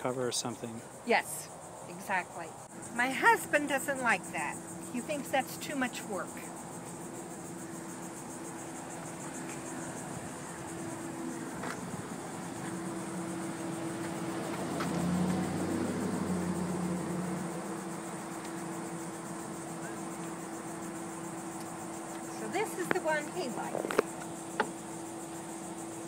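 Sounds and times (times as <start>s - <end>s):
vehicle engine hum: 2.2s - 26.0s.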